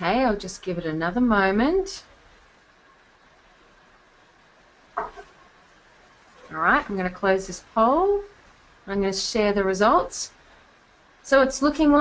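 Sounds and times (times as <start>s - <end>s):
woman's voice: 0.0s - 2.1s, 6.5s - 8.3s, 8.9s - 10.4s, 11.2s - 12.0s
light hiss: 0.0s - 12.0s.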